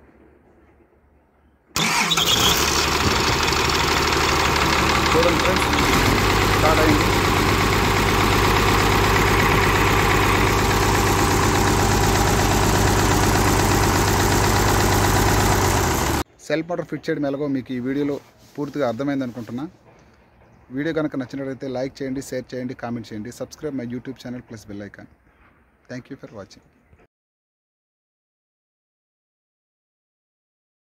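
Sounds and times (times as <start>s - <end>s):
diesel excavator engine starting: 1.8s - 16.2s.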